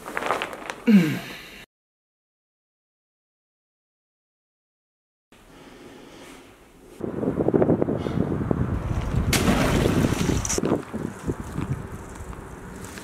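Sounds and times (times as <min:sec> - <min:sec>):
wind buffeting microphone: 0:07.0 - 0:12.8.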